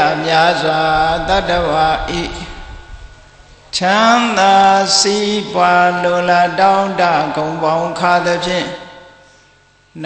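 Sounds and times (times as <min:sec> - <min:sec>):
man chanting: 0:00.0 - 0:09.0.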